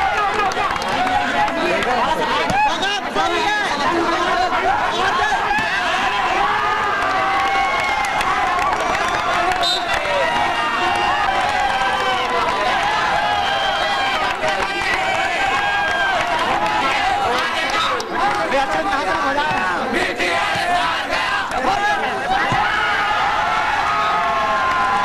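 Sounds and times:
crowd shouting and cheering: 0.0s - 25.0s.

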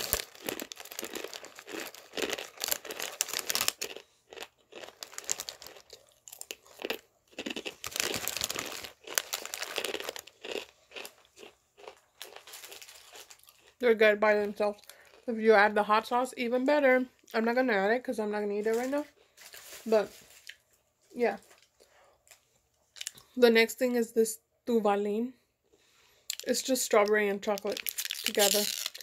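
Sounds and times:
crunchy corn snacks being chewed: 0.0s - 13.8s, 14.7s - 15.3s, 21.6s - 23.3s, 26.3s - 26.6s, 27.6s - 29.0s.

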